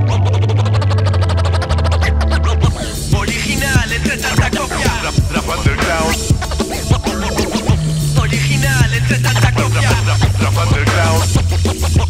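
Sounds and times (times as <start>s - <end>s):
steady bass line: 0.0s - 12.0s
turntable scratching: 1.8s - 12.0s
hip hop drum hits: 2.7s - 12.0s.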